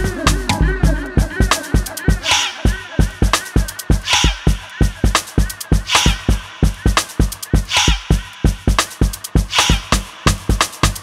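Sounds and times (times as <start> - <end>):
electronic dance beat: 0.0 - 11.0
bright snare hit: 5.9 - 6.3, 9.5 - 10.0.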